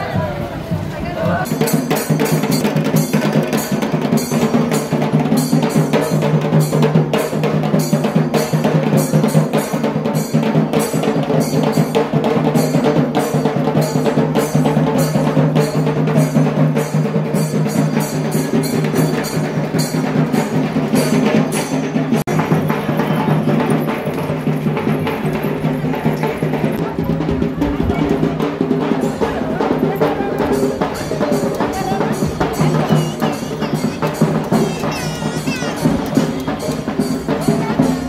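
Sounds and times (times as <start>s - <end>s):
drums beating fast rhythm: 0.0s - 38.0s.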